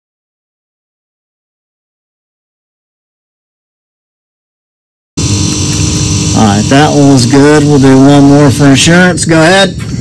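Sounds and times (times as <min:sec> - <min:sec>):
steady mechanical hum: 0:05.2 - 0:10.0.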